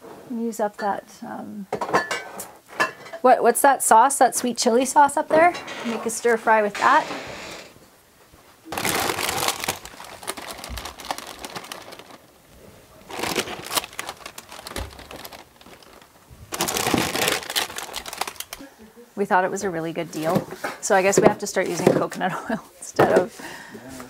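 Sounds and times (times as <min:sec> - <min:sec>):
plastic bags crinkling: 0:08.6 - 0:18.7.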